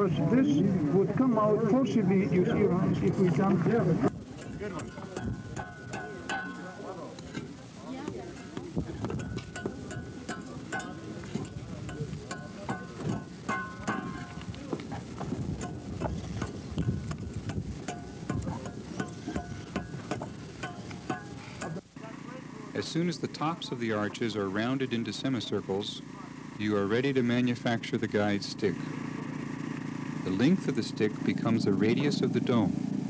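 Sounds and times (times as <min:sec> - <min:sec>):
faint voices: 0:00.0 - 0:20.4, 0:21.0 - 0:32.8
taps and knocks on mud bricks: 0:08.6 - 0:21.8.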